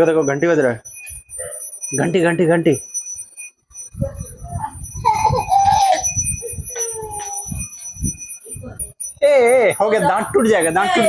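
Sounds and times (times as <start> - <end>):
bell ringing: 0.0 - 11.0
small child's voice: 4.1 - 7.8.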